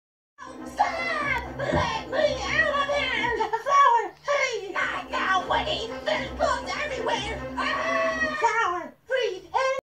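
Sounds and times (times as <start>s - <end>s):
cartoon voices screaming: 7.6s - 8.8s.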